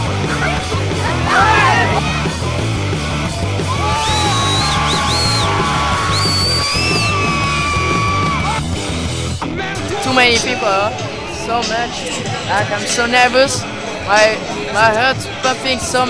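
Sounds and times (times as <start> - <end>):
rock music over sound system: 0.0 - 11.2
crowd yelling and cheering: 0.0 - 16.0.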